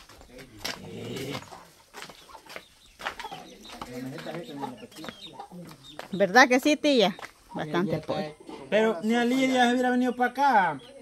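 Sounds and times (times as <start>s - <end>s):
quiet background voices: 0.0s - 6.3s
chickens clucking: 0.0s - 11.0s.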